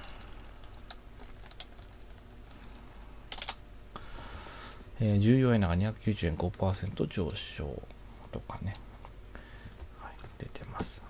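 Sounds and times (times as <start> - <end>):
computer keyboard typing: 0.0 - 3.6
soft hiss: 2.4 - 11.0.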